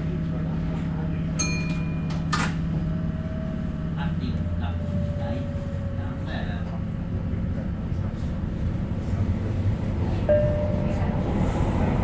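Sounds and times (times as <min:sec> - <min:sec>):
wheels rumbling on rails: 0:00.0 - 0:12.0.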